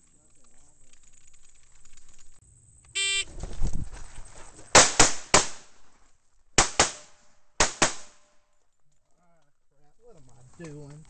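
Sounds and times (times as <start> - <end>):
pistol shots: 4.8 - 5.7, 6.6 - 8.3.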